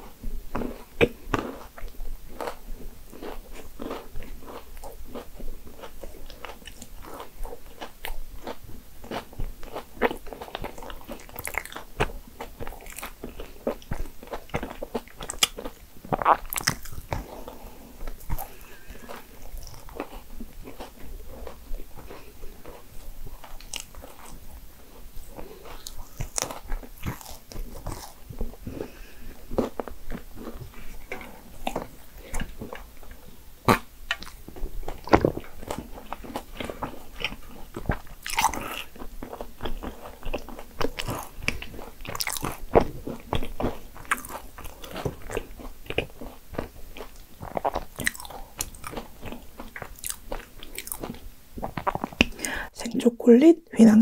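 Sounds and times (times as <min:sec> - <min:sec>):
chewing and biting: 0:00.0 - 0:52.6.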